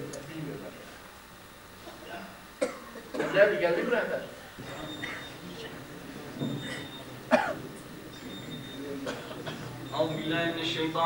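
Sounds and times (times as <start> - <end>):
short cough: 2.6 - 3.4, 6.6 - 7.7, 9.0 - 9.8.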